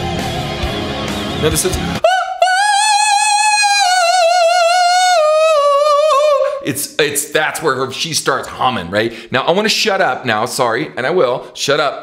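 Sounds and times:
man singing high held note: 2.0s - 6.6s.

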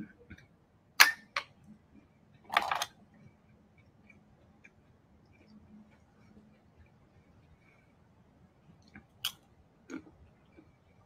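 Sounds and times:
person chewing food: 8.7s - 11.0s.

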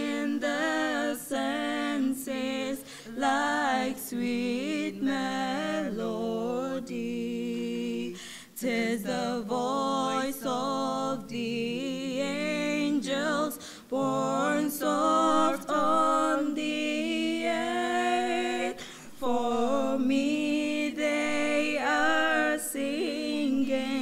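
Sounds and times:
young voices singing a hymn: 0.0s - 24.0s.

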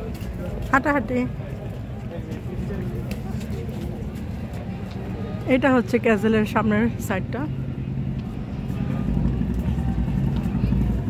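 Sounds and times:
faint crowd voices: 0.0s - 11.0s
low street rumble: 0.0s - 11.0s.

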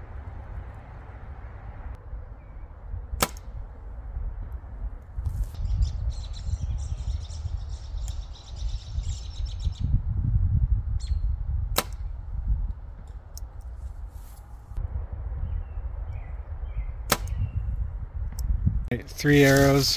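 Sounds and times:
wind rumbling on microphone: 0.0s - 19.9s.

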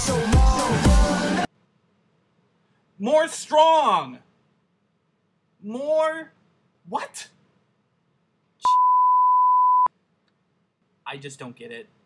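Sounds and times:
censor bleep: 8.6s - 9.9s.

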